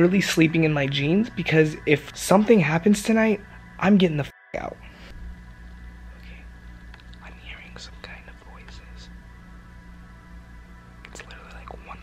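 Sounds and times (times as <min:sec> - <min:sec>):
steady low hum: 0:00.0 - 0:12.0
man whispering: 0:06.2 - 0:09.2, 0:11.0 - 0:12.0.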